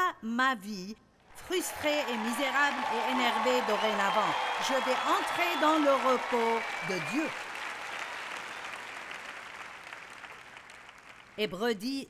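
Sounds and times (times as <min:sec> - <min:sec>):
audience applause: 0:01.4 - 0:11.4.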